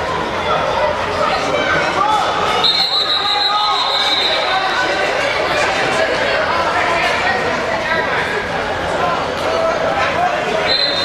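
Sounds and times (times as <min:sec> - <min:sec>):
chatter of players and spectators: 0:00.0 - 0:11.0
referee's whistle: 0:02.6 - 0:04.8, 0:10.6 - 0:11.0.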